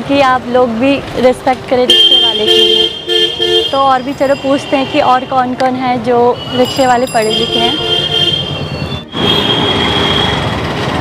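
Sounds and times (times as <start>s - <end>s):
passing vehicles rushing: 2.8s - 11.0s.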